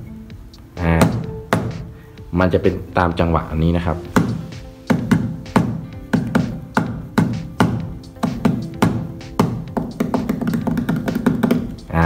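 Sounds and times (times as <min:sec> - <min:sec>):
rhythmic percussive taps: 0:00.0 - 0:02.4, 0:04.1 - 0:12.0.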